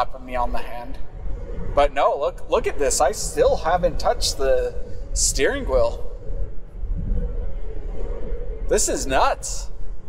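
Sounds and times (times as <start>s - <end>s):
wind noise: 0.0s - 10.0s.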